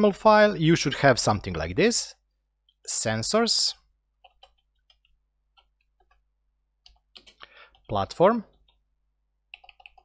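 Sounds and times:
computer keyboard keys clicking: 4.2s - 6.2s, 9.5s - 10.0s.

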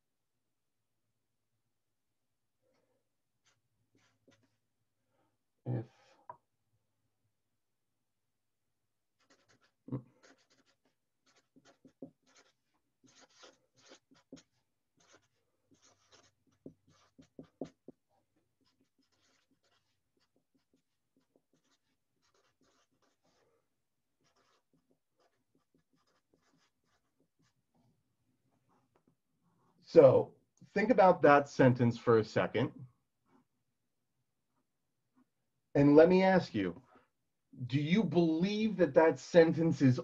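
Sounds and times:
marker scratching on paper: 3.4s - 4.6s, 9.1s - 27.7s
marker tap: 15.7s - 18.0s.

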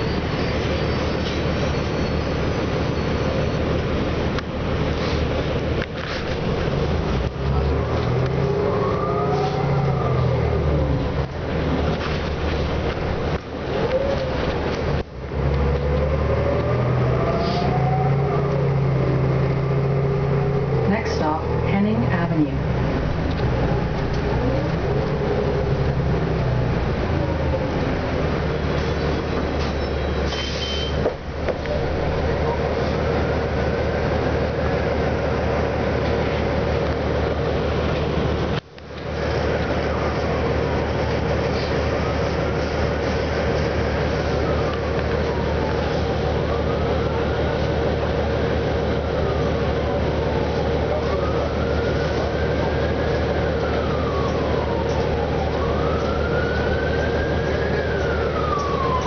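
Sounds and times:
bus diesel engine hum: 0.0s - 59.0s
drivetrain whine: 0.0s - 59.0s.

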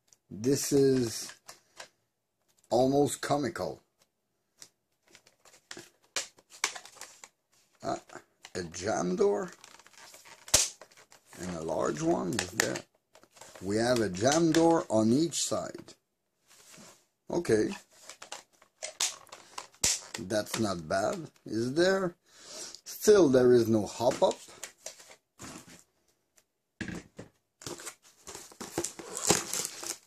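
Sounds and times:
plastic and cardboard rustling: 4.9s - 15.9s, 16.5s - 22.0s, 23.5s - 26.1s, 26.9s - 30.0s.

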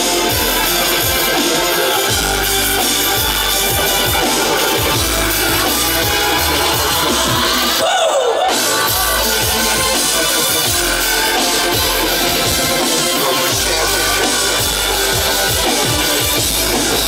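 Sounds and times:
steady kick drum beat: 0.0s - 7.8s, 8.7s - 17.0s
acoustic drum kit: 0.0s - 17.0s
heavy bass: 0.0s - 17.0s
live electronic music: 0.0s - 17.0s.

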